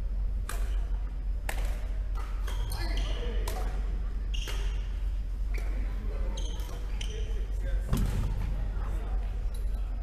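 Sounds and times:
steady low hum: 0.0s - 10.0s
racket hitting shuttlecock: 0.4s - 4.9s.

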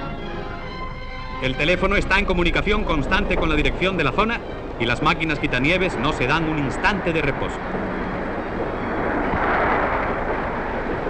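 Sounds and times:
snowplow locomotive hurling snow: 0.0s - 11.0s.

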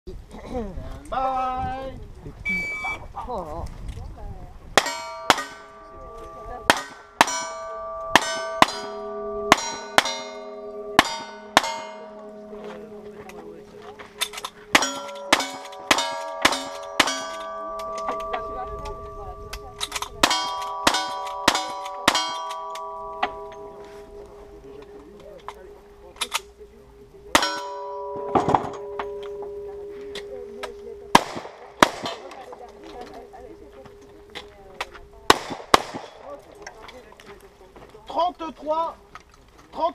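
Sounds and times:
steel target ringing: 4.8s - 34.4s
metallic clicks: 26.2s - 26.5s
gunshot: 31.2s - 32.3s, 35.3s - 36.3s.

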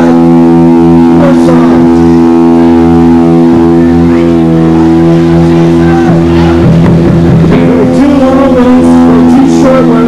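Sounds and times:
distorted electric guitar chord: 0.0s - 10.0s.

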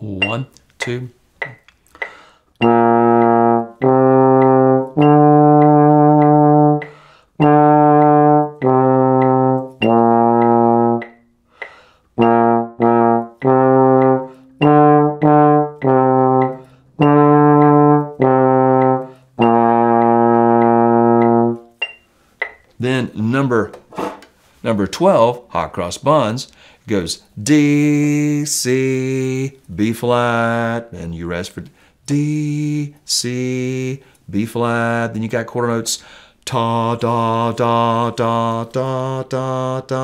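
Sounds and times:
trombone playing notes: 2.6s - 11.3s, 12.2s - 21.8s.

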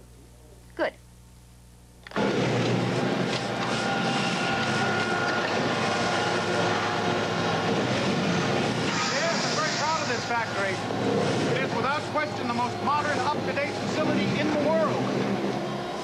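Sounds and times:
factory machinery din: 2.1s - 16.0s.

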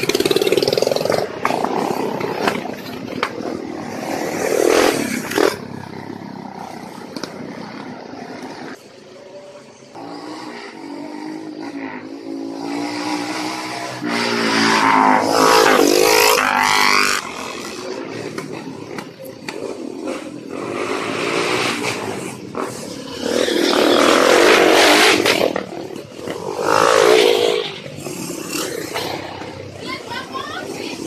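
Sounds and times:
motorcycles riding past: 0.0s - 31.0s.

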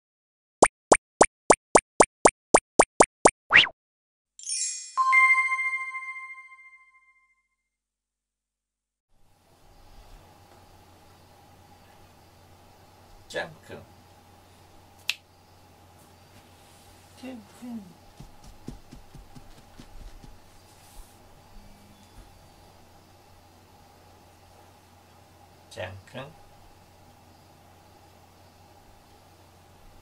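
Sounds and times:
cartoon plops: 0.6s - 3.8s
faint steady hum: 9.2s - 30.0s.

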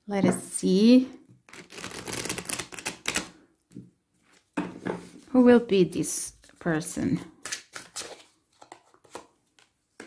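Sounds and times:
cards being shuffled: 1.5s - 3.3s.

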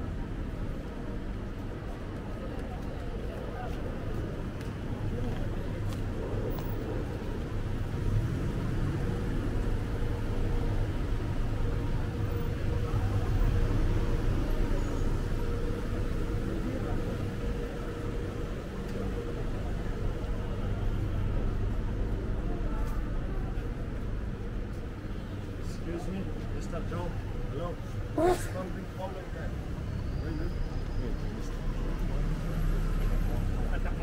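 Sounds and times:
indistinct voices of passers-by: 0.0s - 34.0s
road traffic rumble: 0.0s - 34.0s.

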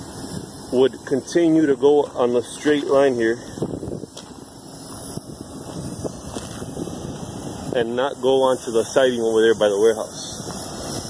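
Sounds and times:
wind on microphone: 3.4s - 9.0s, 10.1s - 11.0s.

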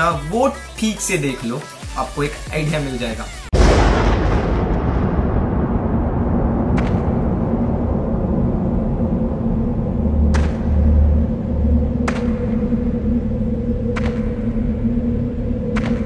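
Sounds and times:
deep boom: 3.5s - 16.0s
low hum: 3.6s - 16.0s
low rumbling drone: 3.6s - 16.0s
soft low pulses: 3.6s - 16.0s.

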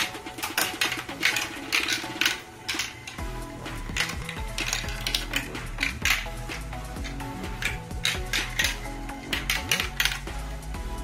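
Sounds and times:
marbles clacking on plastic track: 0.0s - 3.2s, 3.8s - 10.4s
background music: 0.0s - 11.0s.

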